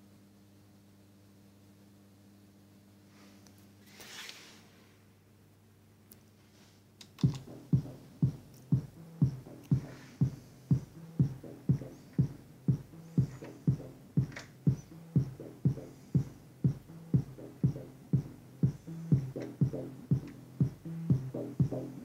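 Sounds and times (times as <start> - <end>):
bass synthesizer line: 7.2 - 22.0
drum machine kick: 7.2 - 22.0.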